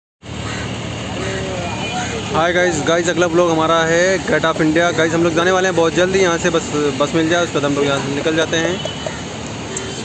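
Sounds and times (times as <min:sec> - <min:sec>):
city hum and hiss: 0:00.2 - 0:10.0
faint voices: 0:01.1 - 0:10.0.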